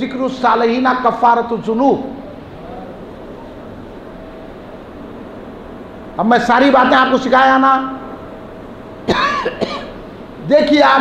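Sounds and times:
man coughing: 9.0s - 10.0s.

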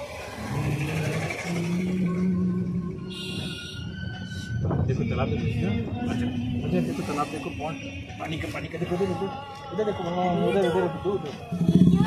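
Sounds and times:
vehicle engine hum: 0.0s - 9.3s, 10.6s - 12.0s
road noise: 0.0s - 12.0s.

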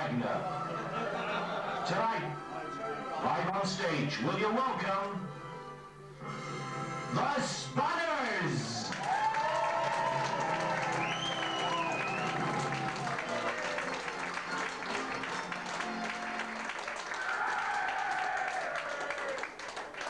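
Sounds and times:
audience clapping and cheering: 8.7s - 20.0s
calls from audience: 8.7s - 20.0s.

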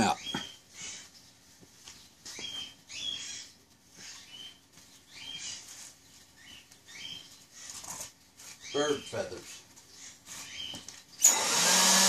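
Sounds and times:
small bird chirping: 0.0s - 11.4s.

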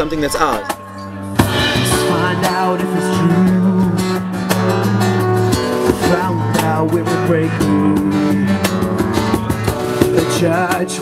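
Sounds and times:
acoustic guitar strumming: 0.6s - 11.0s.

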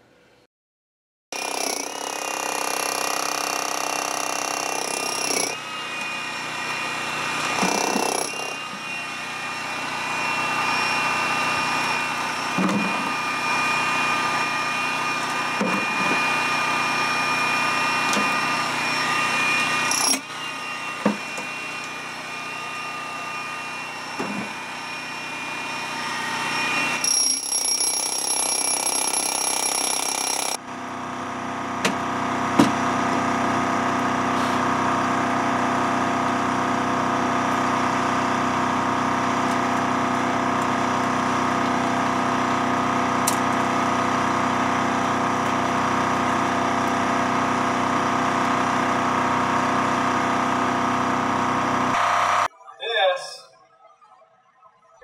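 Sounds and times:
demolition hammer chiselling rock: 1.4s - 6.1s, 7.5s - 8.7s, 27.0s - 30.6s.

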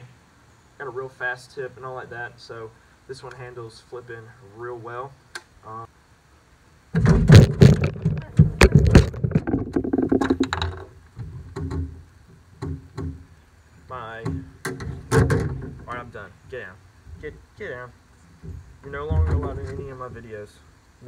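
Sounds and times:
camera clattering on deck: 7.0s - 10.9s
handling noise: 7.0s - 13.3s.

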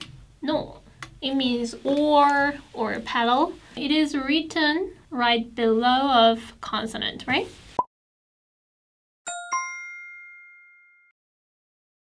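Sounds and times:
bell-like chime ding: 9.3s - 11.1s.

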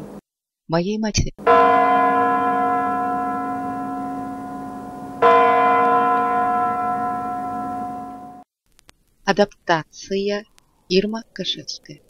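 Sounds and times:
bell ringing: 1.5s - 8.4s.

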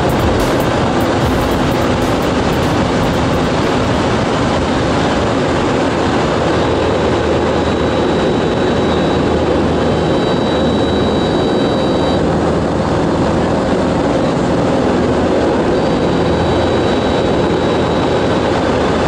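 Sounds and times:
rushing air: 0.0s - 6.1s
light aircraft engine drone: 0.0s - 19.0s
faint high whistle: 9.9s - 12.3s.

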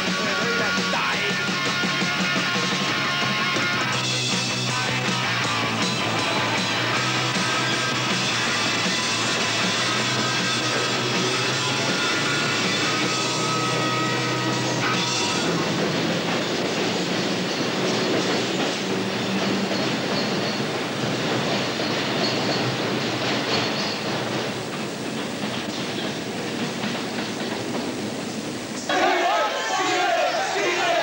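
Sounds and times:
music: 0.0s - 23.6s
train wheels on rails: 0.0s - 31.0s.

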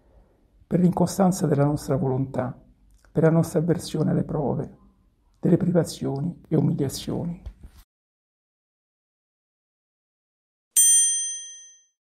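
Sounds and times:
small bell ringing: 10.8s - 12.0s.

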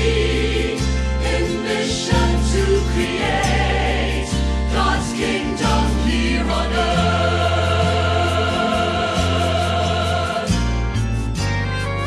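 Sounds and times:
choir singing a hymn: 0.0s - 11.1s
instrumental accompaniment: 0.0s - 12.0s.

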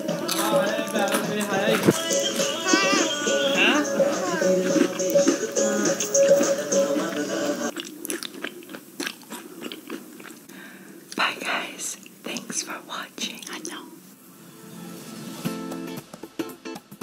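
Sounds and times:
music: 0.0s - 7.7s, 14.3s - 17.0s.

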